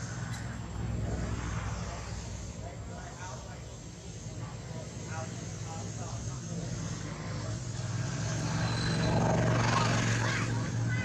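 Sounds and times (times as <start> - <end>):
low steady engine drone: 0.0 - 11.0.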